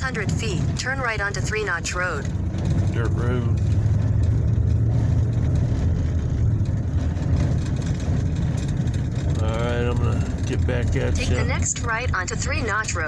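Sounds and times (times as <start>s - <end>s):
vehicle driving on dirt road: 0.0s - 13.0s
person speaking: 9.4s - 11.7s.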